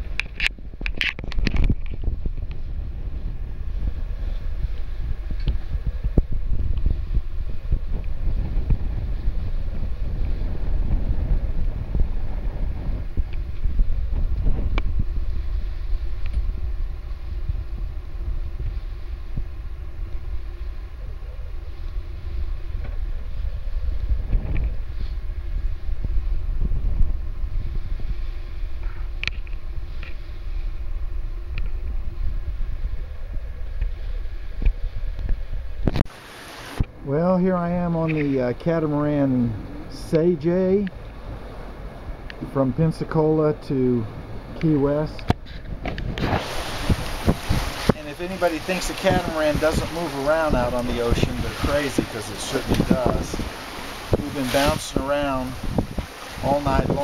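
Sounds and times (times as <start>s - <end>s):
water rushing past hulls: 0.0s - 57.0s
wind buffeting microphone: 0.0s - 57.0s.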